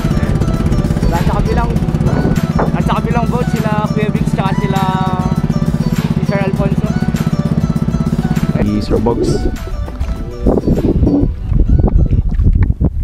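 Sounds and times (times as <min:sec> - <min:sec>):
small boat engine running: 0:00.0 - 0:12.5.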